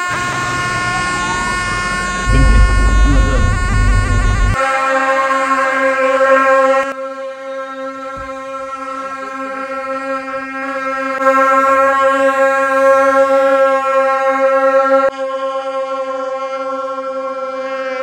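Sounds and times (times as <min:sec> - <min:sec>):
reed horns holding a long note: 0:00.0 - 0:04.6
low rumble: 0:02.3 - 0:04.6.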